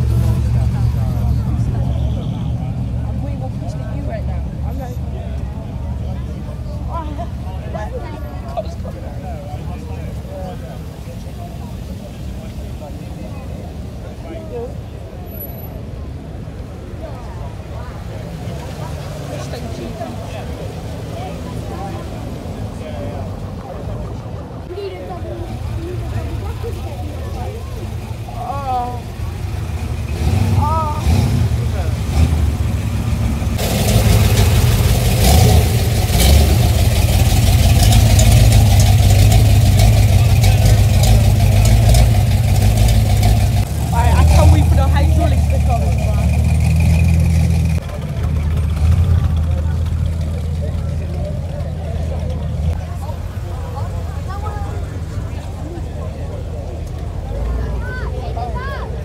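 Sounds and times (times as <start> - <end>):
car engines running at low speed: 0.0 - 59.0
deep loud engine rumble: 0.0 - 59.0.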